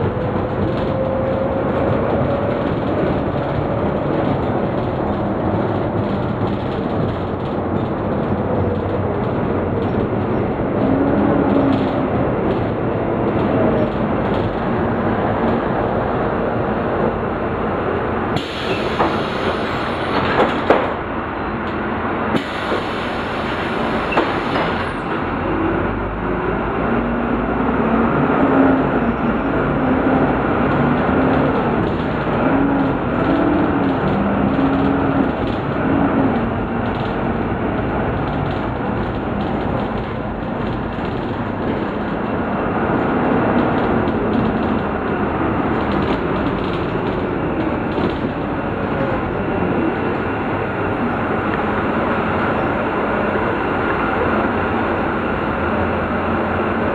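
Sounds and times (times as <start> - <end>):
diesel engine drone: 0.0 - 56.9
road noise: 0.0 - 56.9.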